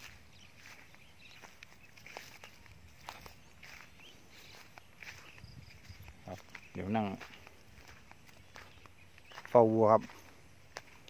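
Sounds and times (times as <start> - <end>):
footsteps on grass and earth: 0.0 - 11.0.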